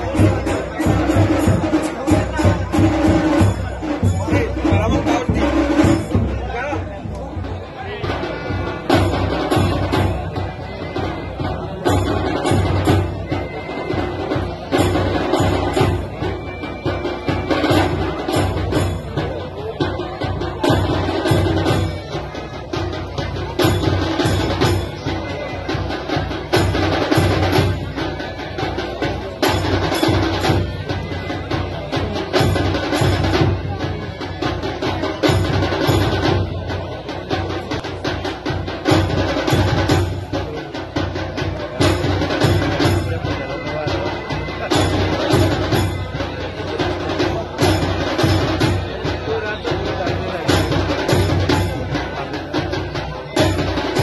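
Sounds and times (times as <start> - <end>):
drum-led percussion music: 0.0 - 54.0.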